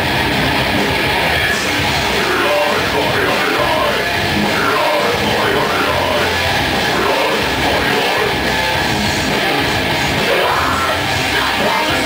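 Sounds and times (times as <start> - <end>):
drums: 0.0 - 12.0
guitars: 0.0 - 12.0.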